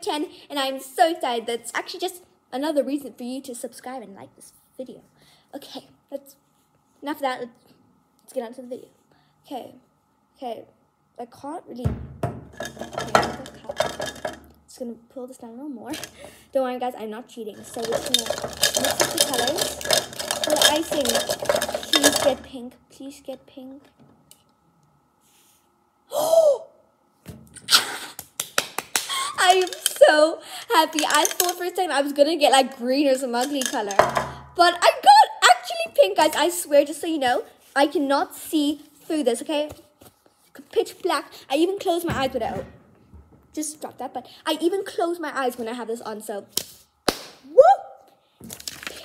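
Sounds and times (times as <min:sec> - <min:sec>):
girl squealing: 0:26.1 - 0:26.8, 0:47.5 - 0:48.0
hand claps: 0:28.2 - 0:29.3, 0:46.6 - 0:47.4
girl laughing: 0:29.0 - 0:29.6.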